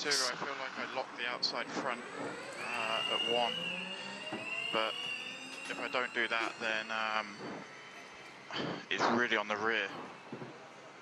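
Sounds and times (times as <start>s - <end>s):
driver's voice over radio: 0.0s - 1.9s, 5.7s - 7.3s
high electric whine: 0.0s - 11.0s.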